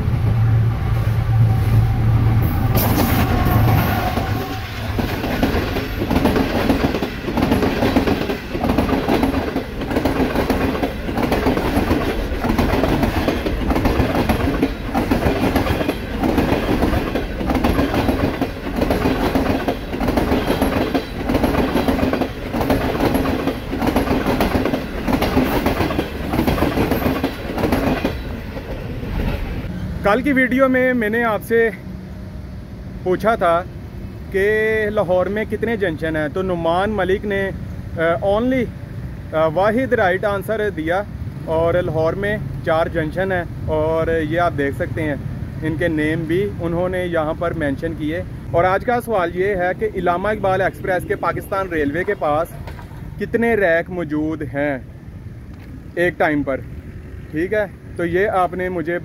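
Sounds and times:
diesel locomotive engine: 0:00.0 - 0:59.0
train wheels clattering over rail joints: 0:02.8 - 0:29.7, 0:51.9 - 0:53.2.

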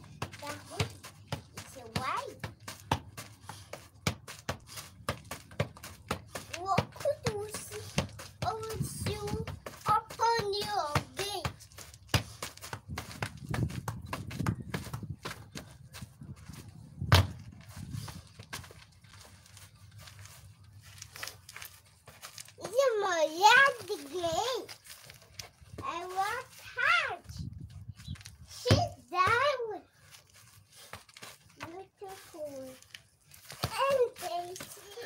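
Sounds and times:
footballs knocking on artificial grass: 0:00.0 - 0:18.8, 0:28.6 - 0:29.5, 0:33.4 - 0:35.0.

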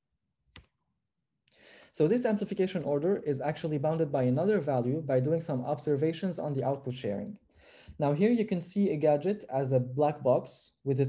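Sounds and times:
person speaking: 0:01.9 - 0:11.0.

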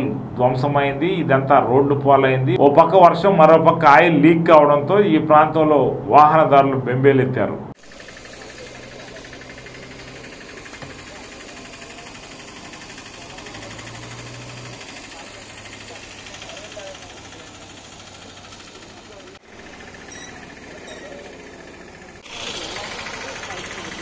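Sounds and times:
vehicle engine idling: 0:07.7 - 0:24.0.

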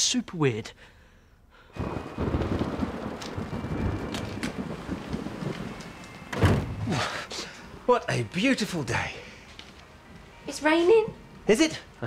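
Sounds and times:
heavy rain falling: 0:01.8 - 0:08.8.

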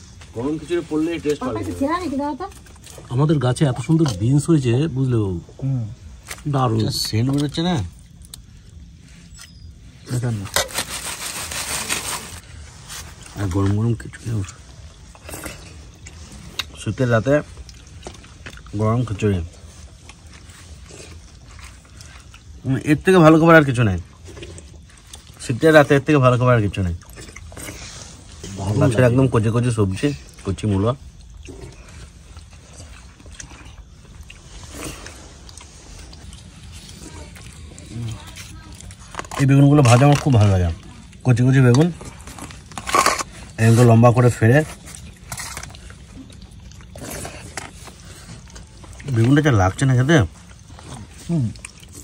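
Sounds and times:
people eating ticks and rustles: 0:00.0 - 0:52.0
dried leaves crinkling: 0:06.0 - 0:52.0.

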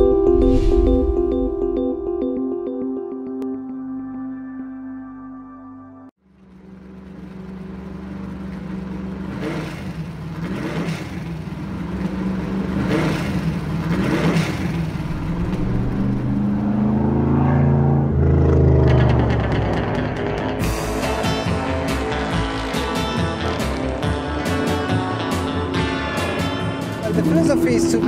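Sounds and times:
car engine rumbling and revving: 0:06.2 - 0:28.0.

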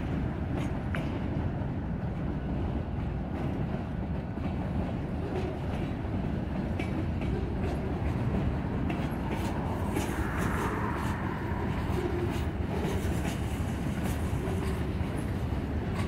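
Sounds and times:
train wheels rumbling on rail: 0:00.0 - 0:16.0.

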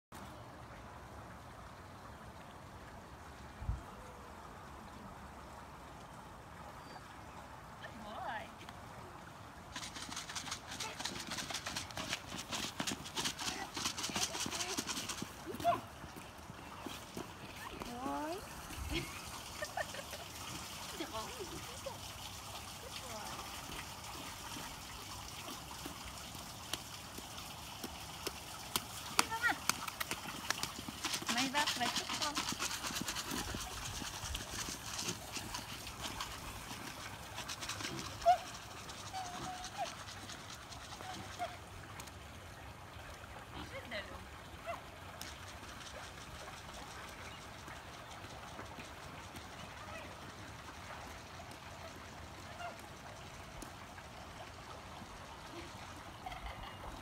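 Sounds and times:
hooves tapping on asphalt: 0:09.7 - 0:18.8, 0:25.4 - 0:42.1, 0:45.2 - 0:50.7
voices: 0:13.3 - 0:15.9, 0:31.2 - 0:32.5.

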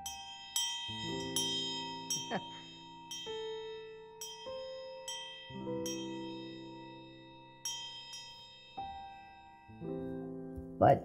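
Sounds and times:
brass hand bell ringing: 0:00.0 - 0:09.7
soft piano music: 0:00.0 - 0:11.0.

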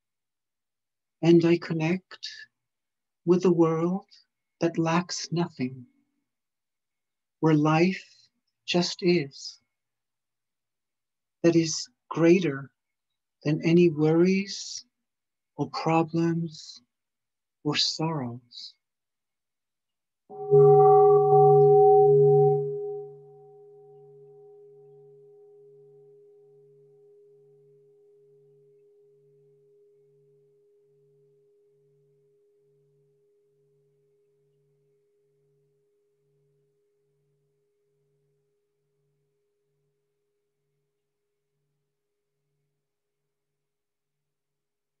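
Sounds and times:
low pulsing hum: 0:20.3 - 0:23.2
meditation bell ringing: 0:20.3 - 0:27.4.

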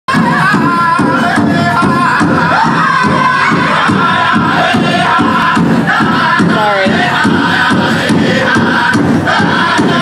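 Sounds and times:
big drum steady beat: 0:00.1 - 0:10.0
singers in high-pitched unison: 0:00.1 - 0:10.0.

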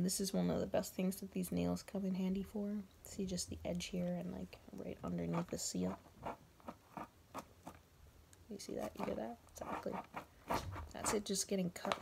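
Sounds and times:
fingernail scratching packing tape: 0:08.8 - 0:11.3.

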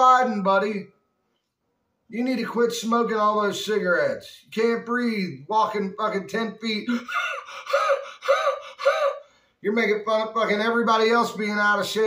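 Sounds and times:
man panting heavily: 0:06.9 - 0:09.4.

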